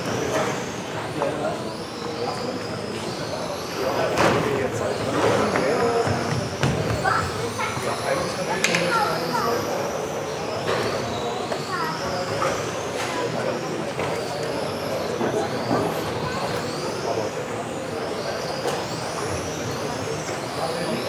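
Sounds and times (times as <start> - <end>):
rc car motors whining: 0.0 - 21.0.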